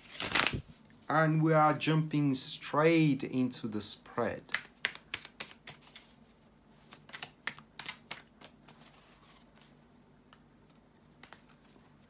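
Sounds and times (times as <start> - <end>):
cards clicking and tapping: 4.5 - 6.0, 6.9 - 8.9, 10.3 - 11.7.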